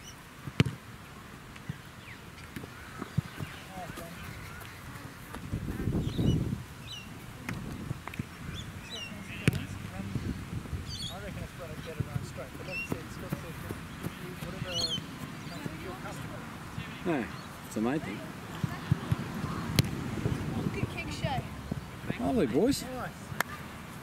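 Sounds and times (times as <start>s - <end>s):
football kick thud: 0.6s - 0.8s, 9.4s - 9.7s, 18.6s - 20.0s
birds chirping: 1.6s - 23.8s
low rumble: 9.2s - 11.0s.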